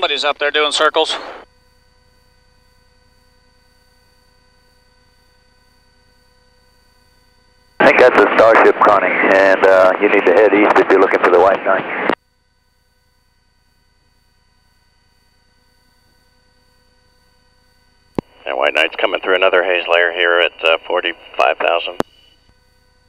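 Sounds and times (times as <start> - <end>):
faint electrical hum with whine: 0.0 - 23.0
voice over radio: 0.1 - 1.4, 7.8 - 12.2, 18.3 - 22.2.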